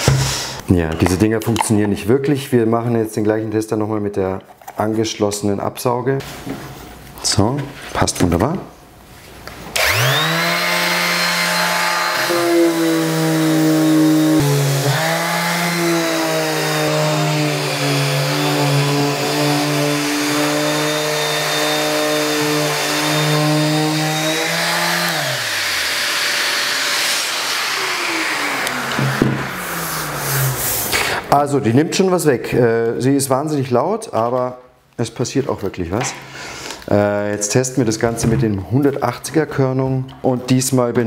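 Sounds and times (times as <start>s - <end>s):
dust extractor rushing: 9.8s - 30.6s
electric orbital sander: 9.8s - 30.9s.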